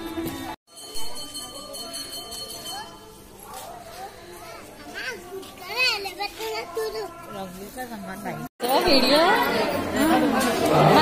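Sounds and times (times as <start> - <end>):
children calling and chattering: 1.3 - 11.0.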